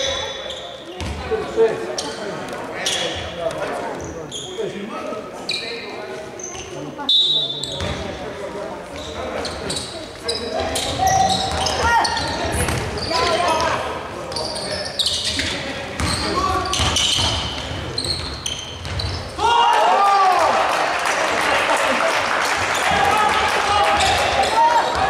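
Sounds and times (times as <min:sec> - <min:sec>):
sneaker squeaks: 0:00.0 - 0:04.8, 0:05.4 - 0:08.2, 0:08.9 - 0:19.4, 0:23.9 - 0:25.0
indistinct shouts: 0:19.4 - 0:20.8.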